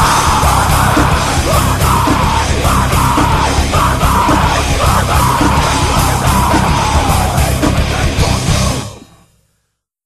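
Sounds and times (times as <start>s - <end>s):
person yelling vocals: 0.0s - 8.5s
pounding drums: 0.0s - 8.9s
distorted guitars: 0.0s - 9.5s.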